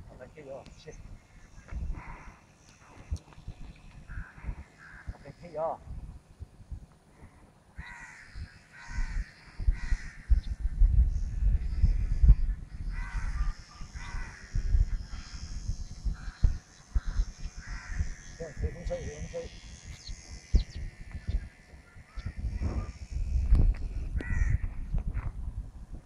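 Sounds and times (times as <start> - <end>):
wind buffeting microphone: 0.0 - 26.0
bird cawing: 1.5 - 2.4, 4.0 - 5.5, 7.8 - 10.5, 12.8 - 14.7, 16.1 - 18.3, 24.2 - 24.7.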